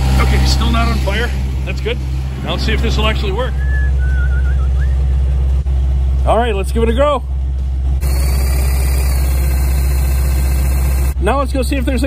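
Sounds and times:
generator engine humming: 0:00.0 - 0:12.0
thin wavering whistle: 0:03.4 - 0:05.6.

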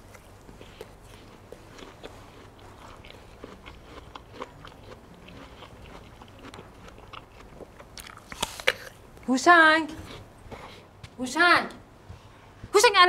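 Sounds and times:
man chewing crisp apple: 0:00.0 - 0:09.2, 0:10.0 - 0:10.9.

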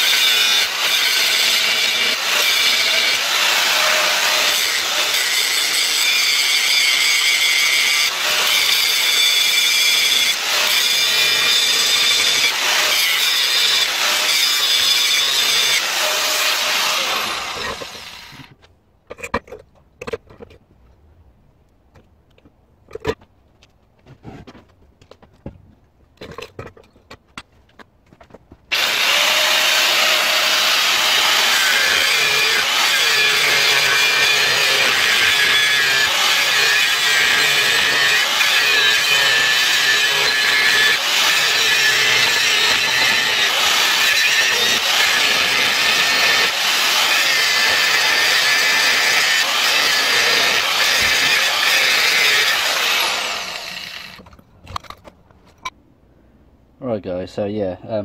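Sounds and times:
angle grinder cutting metal: 0:00.0 - 0:18.6, 0:28.7 - 0:54.2.

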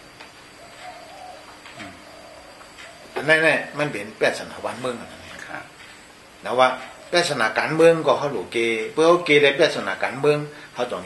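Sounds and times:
bird calling faintly: 0:00.4 - 0:08.0.

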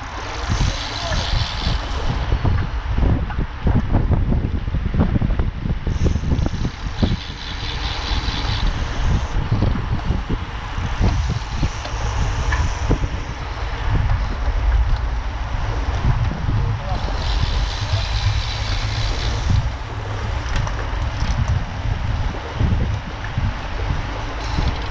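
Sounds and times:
wind rushing over microphone: 0:00.0 - 0:24.9.

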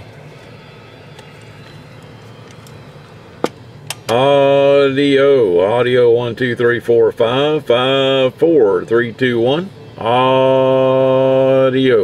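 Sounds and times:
low steady background noise: 0:00.0 - 0:12.0.

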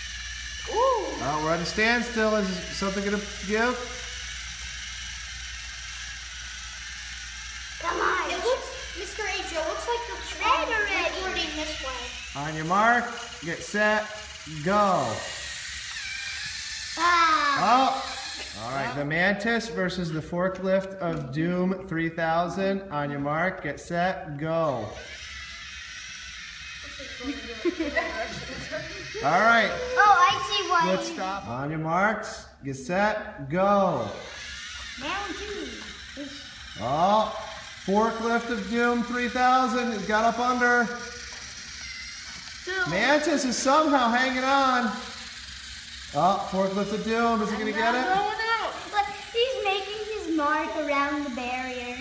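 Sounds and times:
gears grinding: 0:00.0 - 0:19.2, 0:24.7 - 0:31.8, 0:34.0 - 0:52.0
electric motors whirring: 0:00.0 - 0:52.0
voices: 0:07.8 - 0:15.3, 0:46.1 - 0:52.0.

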